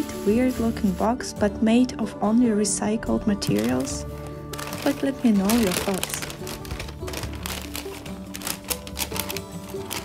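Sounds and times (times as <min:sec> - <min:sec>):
background music: 0:00.0 - 0:10.0
wrapping paper crinkling: 0:03.6 - 0:10.0.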